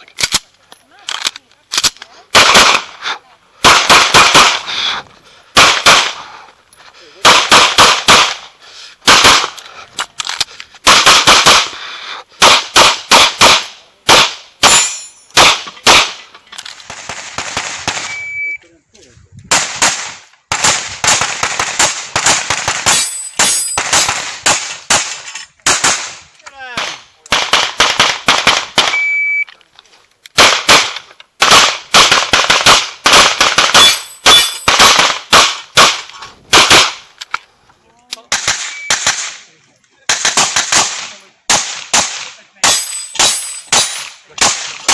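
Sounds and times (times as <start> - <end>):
pistol shots: 1.8 - 2.9, 3.6 - 4.7, 5.6 - 6.2, 7.2 - 9.6, 10.8 - 11.7, 12.4 - 16.2, 16.8 - 18.3, 19.5 - 29.1, 30.4 - 37.0, 38.3 - 39.5, 40.1 - 44.9
shot timer beep: 18.1 - 18.6, 28.9 - 29.5.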